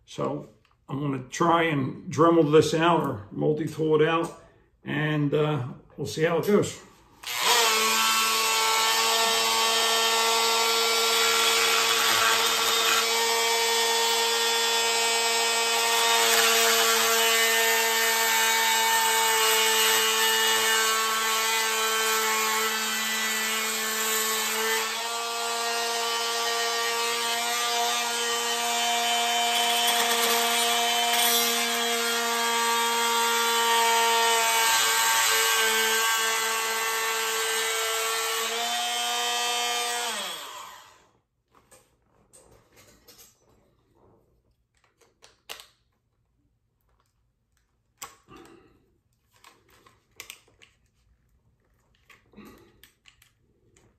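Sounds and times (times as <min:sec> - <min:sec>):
rotary tool cutting plastic: 0:07.2 - 0:41.0.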